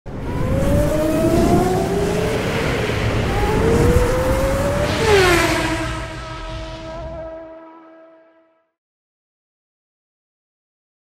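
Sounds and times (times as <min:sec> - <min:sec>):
racing car engine accelerating: 0:00.1 - 0:08.4
car whooshing past: 0:00.1 - 0:08.5.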